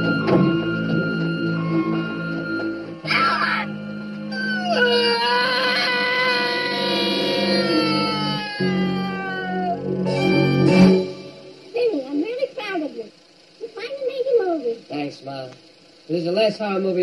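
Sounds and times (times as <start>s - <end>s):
low droning film score: 0.0s - 13.6s
woman wailing scream: 3.0s - 11.0s.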